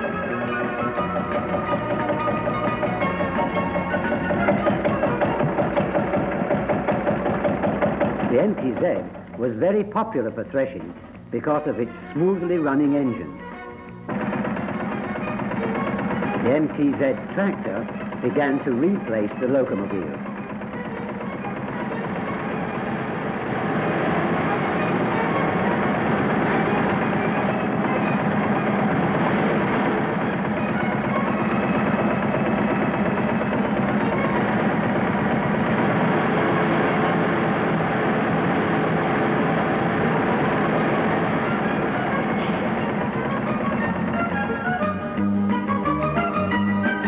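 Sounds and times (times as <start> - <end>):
tractor engine running: 0.0 - 47.0.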